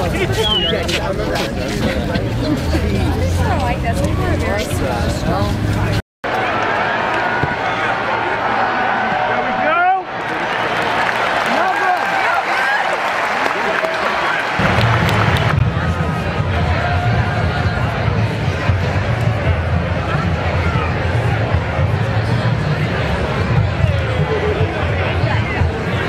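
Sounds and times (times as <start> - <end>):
crowd hubbub: 0.0 - 26.0.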